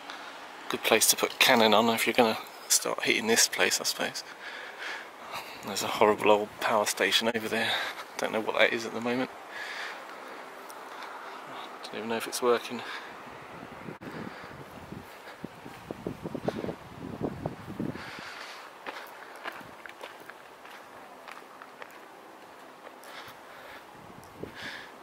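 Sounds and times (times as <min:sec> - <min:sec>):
footsteps walking: 0:18.4 - 0:23.4.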